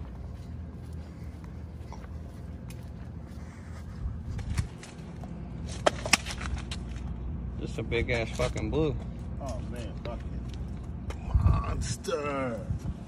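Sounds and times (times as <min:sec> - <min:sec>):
wind rumble: 0:10.5 - 0:13.0.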